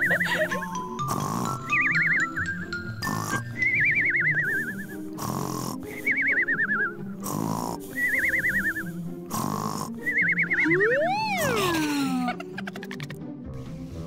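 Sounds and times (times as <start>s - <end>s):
cartoon snoring snort: 0.0s - 2.1s, 2.9s - 3.8s, 4.4s - 6.1s, 7.1s - 10.2s
background music: 0.0s - 14.0s.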